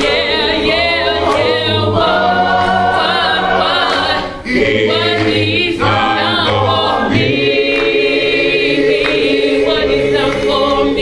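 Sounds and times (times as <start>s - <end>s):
vocal group singing in harmony: 0.0s - 11.0s.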